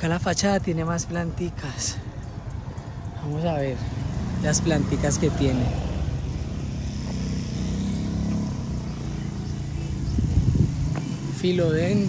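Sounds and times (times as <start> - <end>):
motorcycle engine passing by: 3.5 - 12.0.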